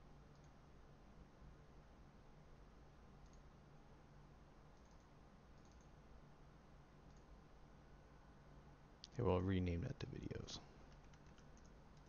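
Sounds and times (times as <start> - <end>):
computer mouse clicks: 0.3 - 0.6, 3.2 - 3.5, 4.7 - 6.0, 7.0 - 7.3, 10.8 - 12.0.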